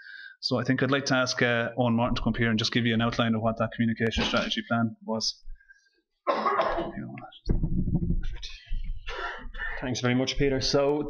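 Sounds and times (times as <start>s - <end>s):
man clearing his throat: 4.2s - 4.6s, 6.3s - 7.2s
man coughing: 4.2s - 4.6s, 6.3s - 7.2s
loud low thump and rumble: 7.5s - 9.0s.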